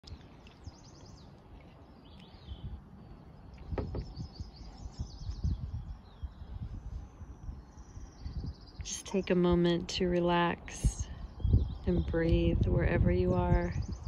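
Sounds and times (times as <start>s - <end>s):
small birds chirping and trilling: 0.0s - 14.0s.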